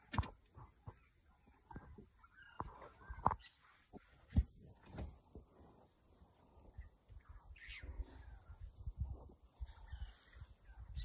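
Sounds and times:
rustles: 0.0s - 11.0s
bird calling: 0.6s - 4.0s.

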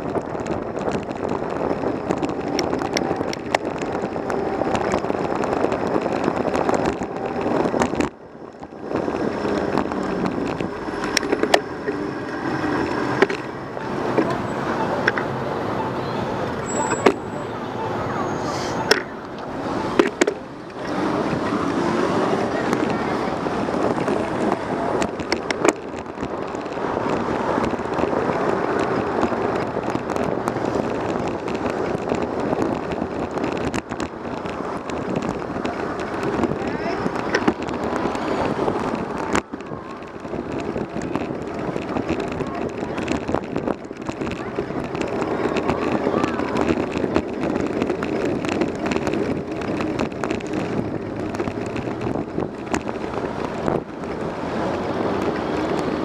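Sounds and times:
car traffic: 0.0s - 56.0s
wind and road noise: 0.0s - 56.0s.

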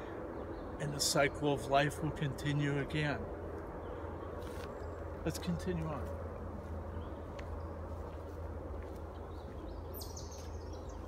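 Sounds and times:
steady low rumble: 0.0s - 11.0s
faint footsteps on dirt trail: 4.3s - 11.0s
songbird call: 9.2s - 11.0s.

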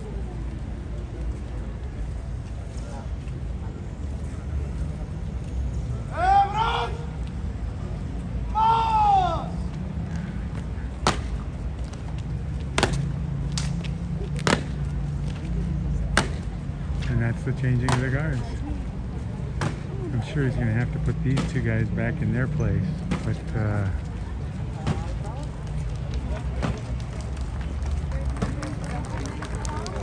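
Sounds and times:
murmur of crowd: 0.0s - 30.0s
shouted commands: 6.1s - 7.2s, 8.5s - 9.6s.

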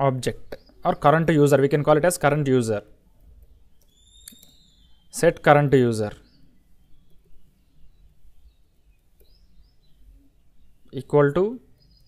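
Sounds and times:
faint high bird-like whistle: 3.6s - 5.2s.

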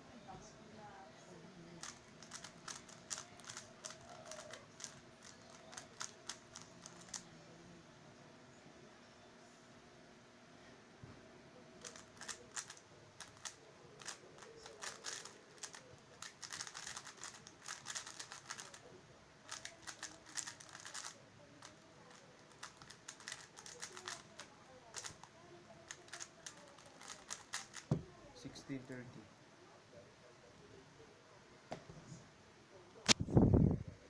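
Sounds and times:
plastic speed cube clicking: 1.8s - 7.2s, 11.8s - 18.8s, 19.5s - 25.3s, 25.9s - 28.0s
cube knocking on table: 27.9s - 28.1s.

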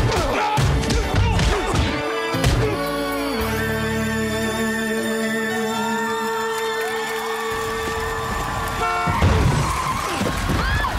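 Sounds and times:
car horn blaring: 8.8s - 9.5s.

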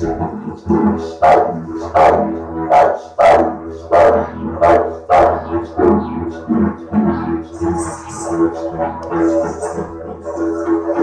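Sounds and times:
didgeridoo drone: 0.0s - 11.0s.

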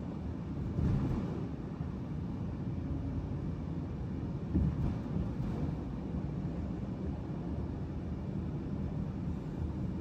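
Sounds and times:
car road and engine rumble: 0.0s - 10.0s.

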